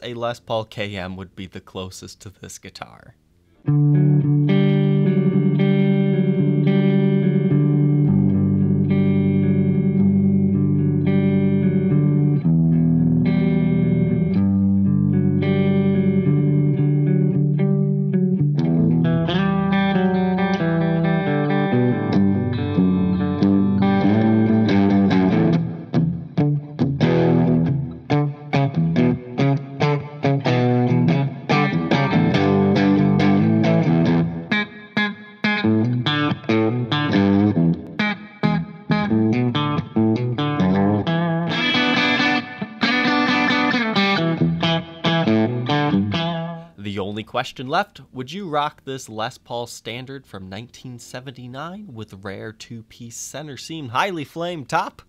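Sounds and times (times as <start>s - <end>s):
clean electric guitar: 3.2s - 46.8s.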